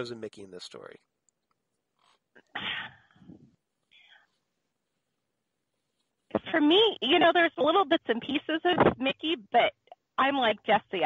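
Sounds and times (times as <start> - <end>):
whispery breath: 3.9 - 4.4.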